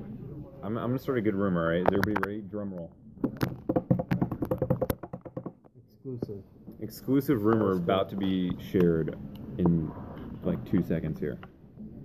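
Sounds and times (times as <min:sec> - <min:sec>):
rapid drum roll taps: 0:03.5 - 0:05.6.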